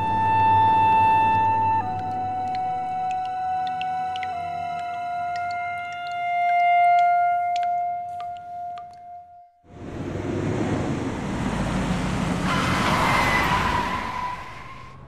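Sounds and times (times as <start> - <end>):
car engine and tyre noise: 9.6 - 15.0.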